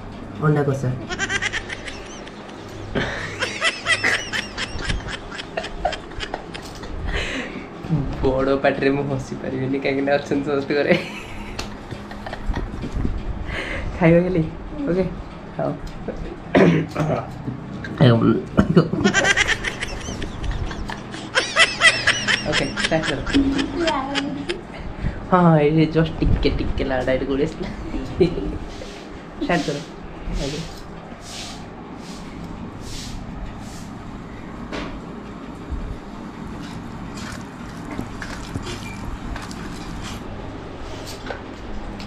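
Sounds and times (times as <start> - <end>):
woman giggling: 1.0 - 7.2, 18.8 - 24.8
birds chirping: 1.2 - 5.6.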